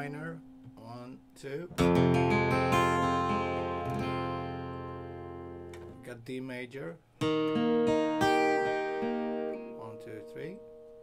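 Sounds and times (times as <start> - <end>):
acoustic guitar chord ringing: 1.7 - 6.1, 7.2 - 11.0.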